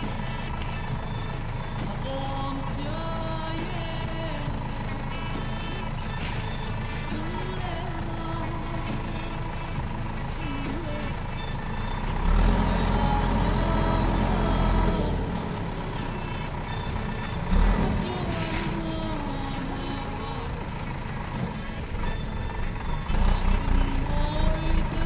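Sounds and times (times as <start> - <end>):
diesel backhoe engine labouring: 0.0 - 25.0.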